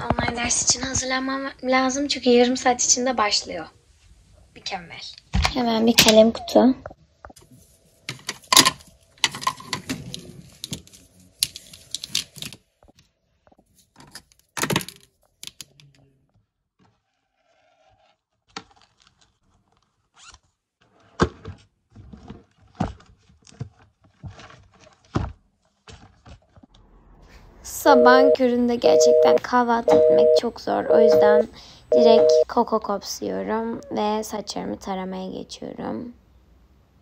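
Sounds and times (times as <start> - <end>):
pens clicking and scraping: 8.1 - 12.6, 14.0 - 15.8
books being handled: 20.9 - 26.6.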